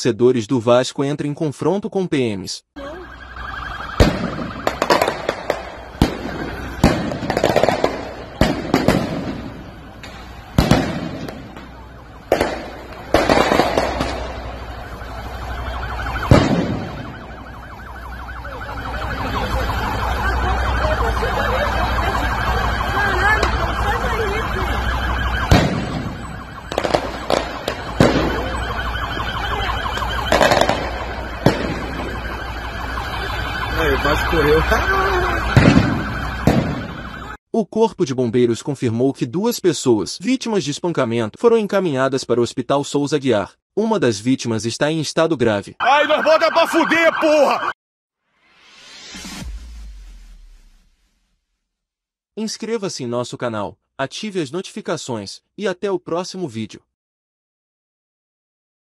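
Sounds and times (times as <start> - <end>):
wailing alarm-like tone: 2.8 - 7.4, 14.2 - 37.4, 45.8 - 47.8
loud explosive bangs echoing: 3.9 - 14.9, 16.1 - 17.5, 25.4 - 32.6, 35.4 - 37.1.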